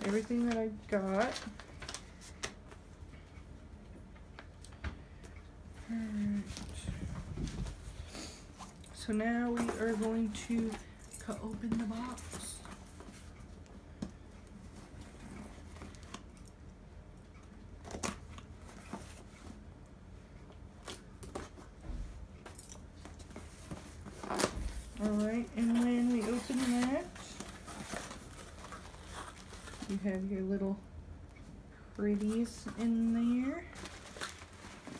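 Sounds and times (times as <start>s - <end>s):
woman speaking: 0.0s - 1.5s, 5.8s - 7.1s, 9.0s - 12.8s, 25.0s - 27.4s, 29.9s - 30.8s, 32.0s - 33.8s.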